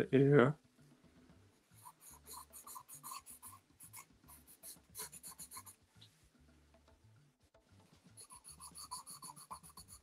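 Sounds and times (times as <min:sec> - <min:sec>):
pencil scratching on paper: 0:01.7 - 0:05.8, 0:08.2 - 0:10.0.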